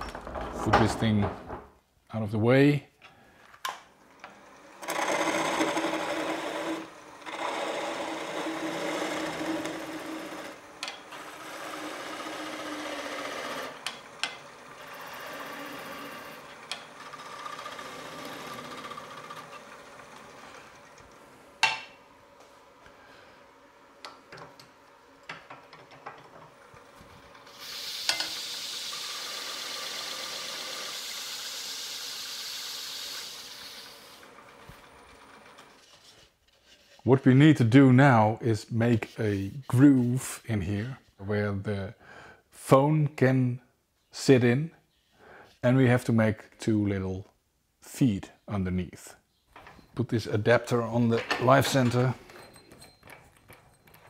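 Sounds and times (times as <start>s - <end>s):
turning tool cutting wood on lathe: 3.9s - 36.3s.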